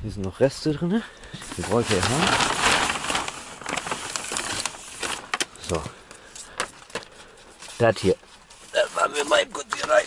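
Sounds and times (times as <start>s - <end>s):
rustling handling noise: 1.3s - 10.0s.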